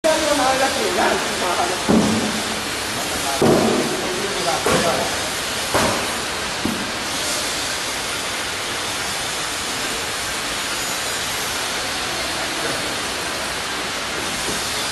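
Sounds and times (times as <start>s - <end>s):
machinery hiss: 0.0s - 14.9s.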